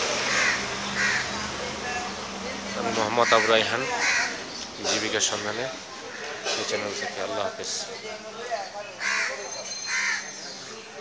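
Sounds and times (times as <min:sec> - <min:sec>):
crow cawing: 0:00.2 - 0:01.5, 0:03.0 - 0:04.5, 0:05.4 - 0:06.6, 0:09.0 - 0:10.4.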